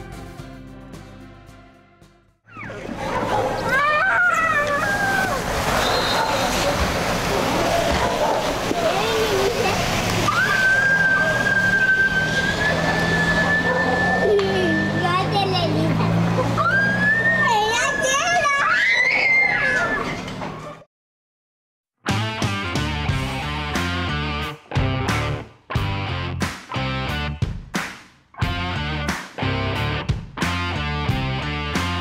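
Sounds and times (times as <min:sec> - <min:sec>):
children shouting and squealing: 0:02.5 - 0:06.8, 0:07.5 - 0:20.8
child's long drawn-out cry: 0:03.7 - 0:05.5.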